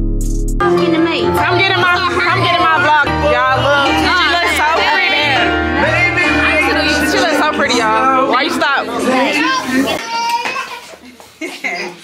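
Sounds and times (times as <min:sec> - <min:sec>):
people talking at once: 0:00.7 - 0:12.0.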